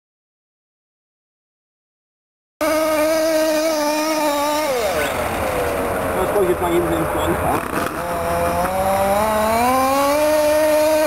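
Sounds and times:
small two-stroke engine revving: 0:02.6 - 0:11.0.

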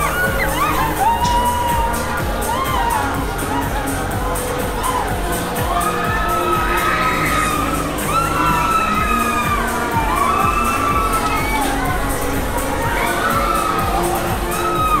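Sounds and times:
music with steady beat: 0:00.0 - 0:15.0
riders screaming: 0:00.0 - 0:15.0.

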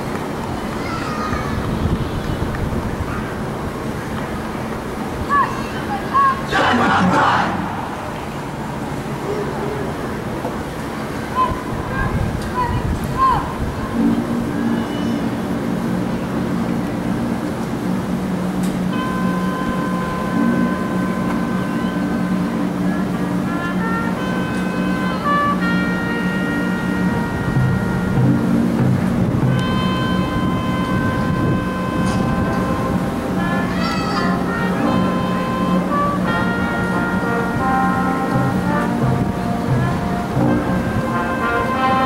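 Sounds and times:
marching band playing chords: 0:06.2 - 0:42.0.

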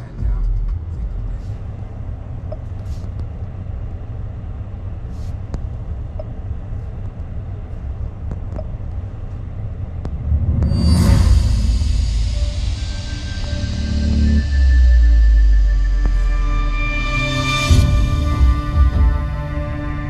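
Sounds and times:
low cabin rumble: 0:00.0 - 0:20.0
touchscreen tapping clicks: 0:08.2 - 0:08.8.

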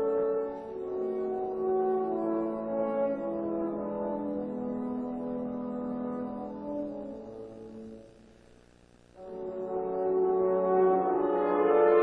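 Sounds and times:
horns playing sustained chord: 0:00.0 - 0:08.3, 0:09.2 - 0:12.0.

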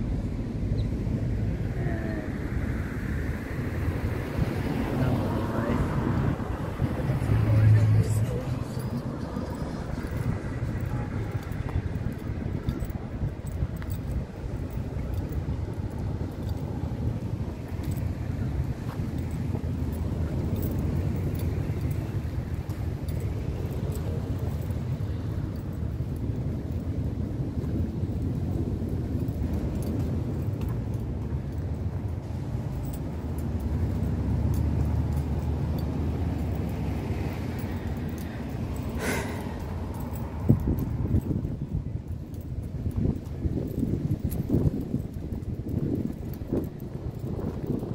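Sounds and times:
cars passing: 0:00.0 - 0:47.9.

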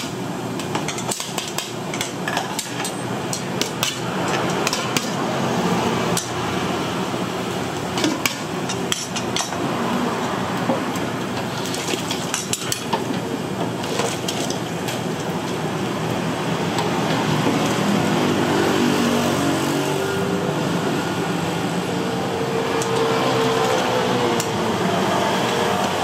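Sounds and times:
kitchen background noise: 0:00.0 - 0:26.0.

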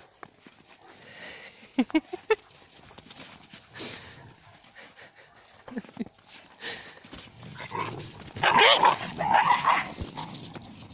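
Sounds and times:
dogs barking and yelping: 0:07.6 - 0:10.9.

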